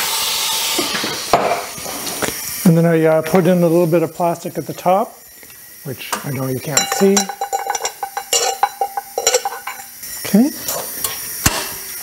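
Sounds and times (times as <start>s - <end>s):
faint steady hum: 2.7s - 11.2s.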